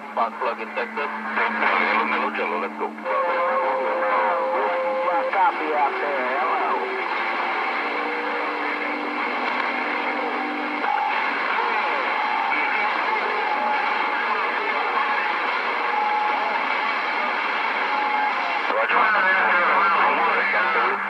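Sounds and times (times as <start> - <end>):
faint garbled radio voices: 0.0 - 21.0
radio static hiss: 0.0 - 21.0.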